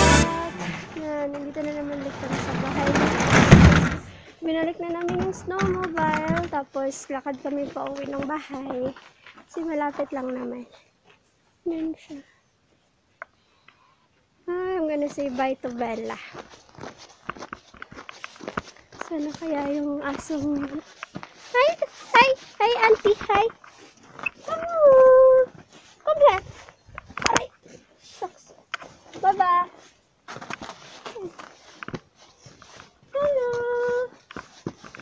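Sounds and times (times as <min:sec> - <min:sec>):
footsteps on snow: 0:06.5 - 0:10.6, 0:15.0 - 0:35.0.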